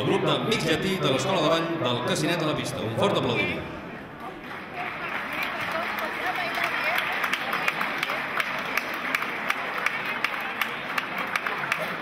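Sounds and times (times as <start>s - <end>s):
audience applauding: 4.3s - 12.0s.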